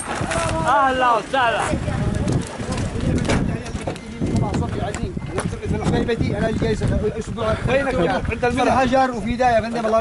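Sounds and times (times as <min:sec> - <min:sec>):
truck rumbling on rough dirt track: 0:00.0 - 0:08.5.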